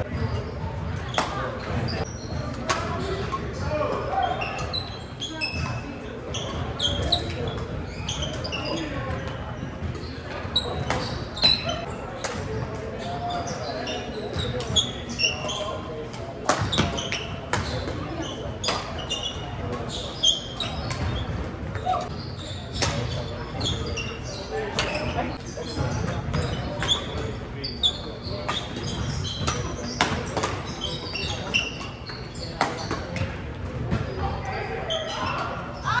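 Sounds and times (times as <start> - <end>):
shoe squeaks on hardwood court: 0.0 - 36.0.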